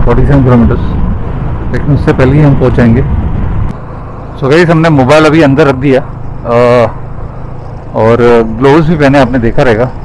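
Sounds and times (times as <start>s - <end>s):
motorcycle engine cruising: 0.0s - 10.0s
road noise: 0.0s - 10.0s.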